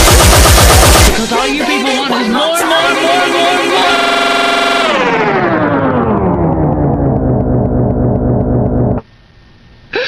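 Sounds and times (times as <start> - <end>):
electronic dance music slowing down: 0.0 - 9.0
low drone: 2.8 - 9.0.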